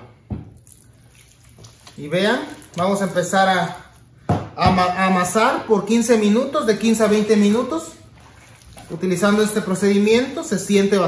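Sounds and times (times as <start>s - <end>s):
dough kneaded by hand: 0.0s - 11.0s
water pouring from plastic cup: 0.5s - 4.1s, 6.7s - 10.5s.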